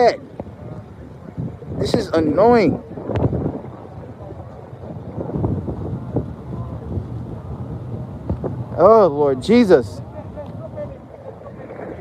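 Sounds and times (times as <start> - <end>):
faint background voices: 0.0 - 12.0
wind rumbling on microphone: 0.0 - 12.0.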